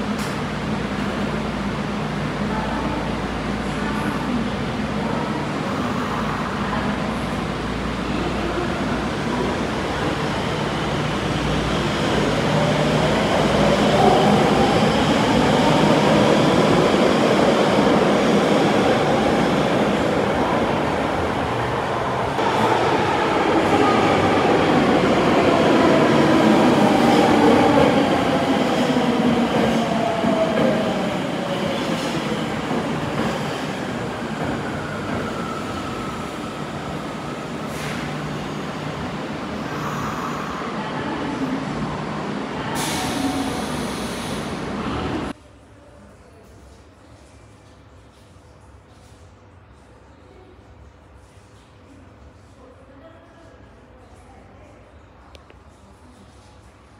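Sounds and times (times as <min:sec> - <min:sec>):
subway train wheels rumbling on rail: 0:00.0 - 0:45.4.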